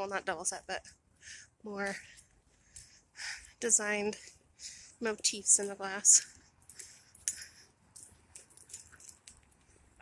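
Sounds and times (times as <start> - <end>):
keys jingling: 6.2 - 9.8.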